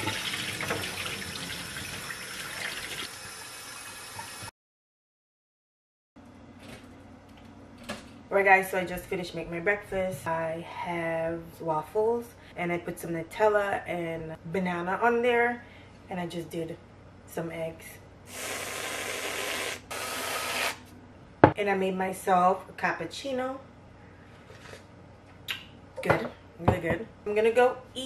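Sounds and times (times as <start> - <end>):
faint kitchen hum: 6.2 - 28.0.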